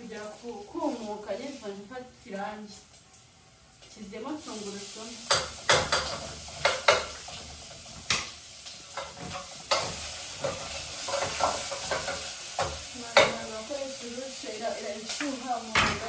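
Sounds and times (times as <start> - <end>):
cooking sizzling hiss: 0.0 - 16.0
metal spoon knocking on pot: 5.3 - 7.2.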